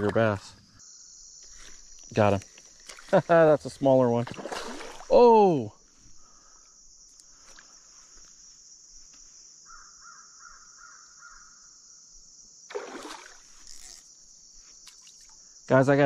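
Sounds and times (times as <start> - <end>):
high-pitched insect buzz: 0.8 - 3.4, 6.0 - 16.0
fish splash: 4.2 - 5.2, 12.7 - 13.6
bird calling: 9.7 - 11.6.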